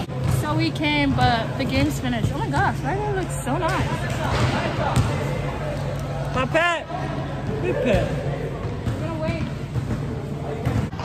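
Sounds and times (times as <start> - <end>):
basketball bouncing: 0.0 - 5.2, 8.6 - 11.0.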